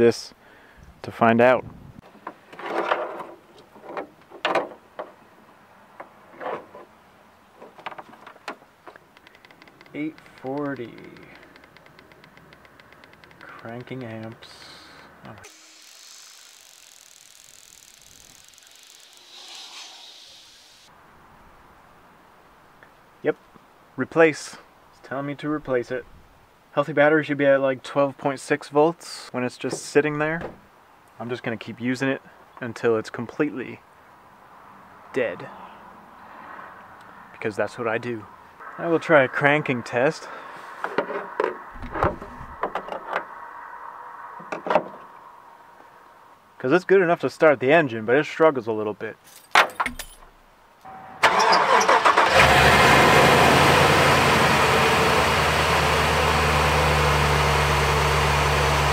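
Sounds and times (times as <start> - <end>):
faint steady hiss: 8.4 - 36.4.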